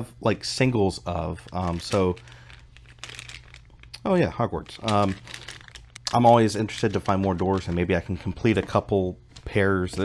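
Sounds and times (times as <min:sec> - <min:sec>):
plastic bag crinkling: 0:01.0 - 0:10.0.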